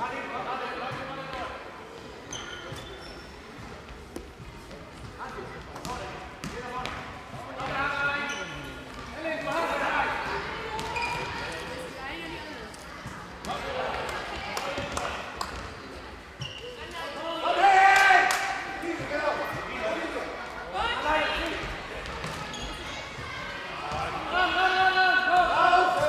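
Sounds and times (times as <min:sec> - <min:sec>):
ball bouncing on hall floor: 0:05.0 - 0:09.2, 0:10.7 - 0:11.5.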